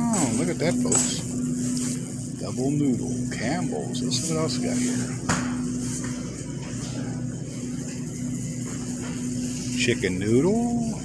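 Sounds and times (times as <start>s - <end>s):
store background hum: 0.0s - 11.0s.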